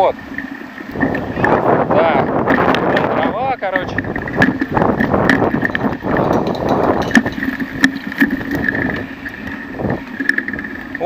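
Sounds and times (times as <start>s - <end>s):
bicycle tyre rumble: 0.0s - 11.0s
bike and camera rattling: 0.0s - 11.0s
wind on microphone: 0.0s - 11.0s.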